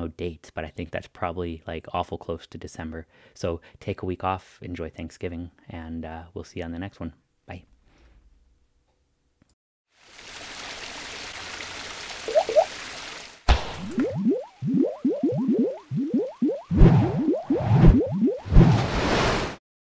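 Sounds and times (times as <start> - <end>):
rising bloops: 12.3 - 12.7, 13.6 - 18.8.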